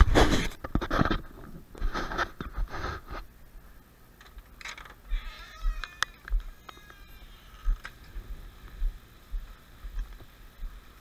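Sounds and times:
high wavering animal cry: 5.0 - 7.8.

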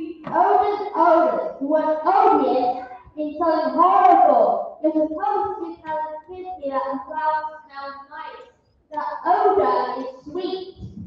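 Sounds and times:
child singing: 9.0 - 10.9.

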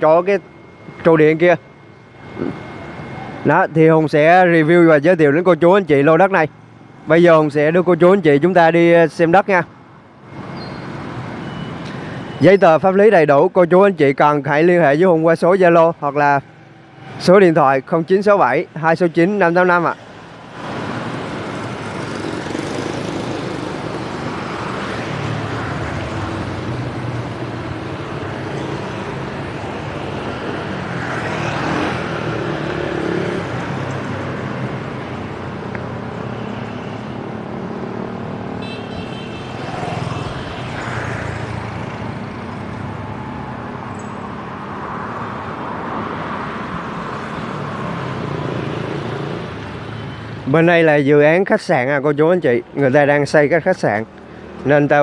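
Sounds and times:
motorbikes passing by: 20.4 - 51.4.

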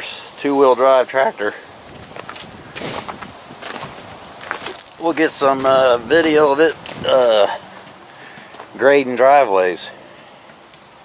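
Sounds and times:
footsteps on gravel: 1.4 - 8.9.

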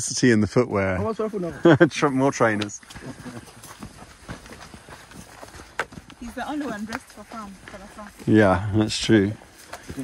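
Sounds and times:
footsteps on damp sandy soil: 1.0 - 10.0.

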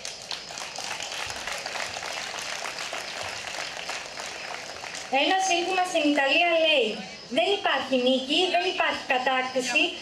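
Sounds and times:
audience applause: 0.0 - 5.9.

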